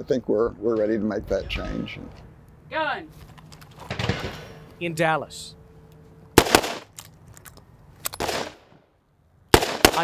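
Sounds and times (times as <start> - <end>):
revolver gunshots: 6.4 - 6.9, 8.2 - 8.7, 9.5 - 10.0.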